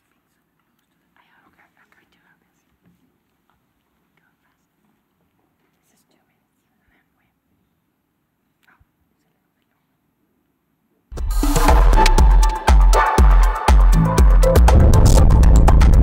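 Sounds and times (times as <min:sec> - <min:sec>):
faint whispering: 0:00.0 - 0:02.8, 0:03.4 - 0:07.9, 0:08.5 - 0:10.1.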